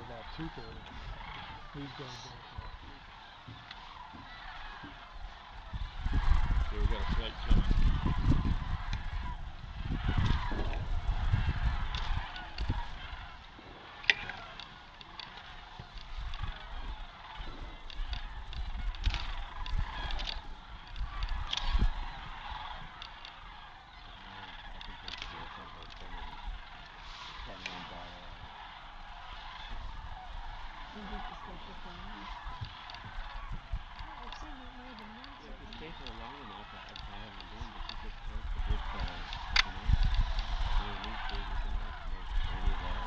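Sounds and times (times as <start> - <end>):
cranes calling: 0.0 - 43.0
low rumble on microphone: 0.0 - 43.0.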